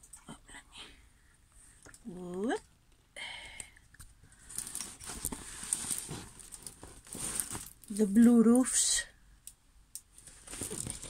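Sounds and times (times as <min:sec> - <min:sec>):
plastic film crinkling: 0:04.5 - 0:08.0.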